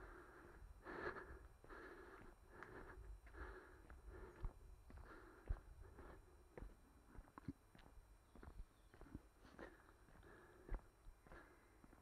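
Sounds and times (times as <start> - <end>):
person breathing heavily: 0.0 - 7.2, 9.4 - 12.0.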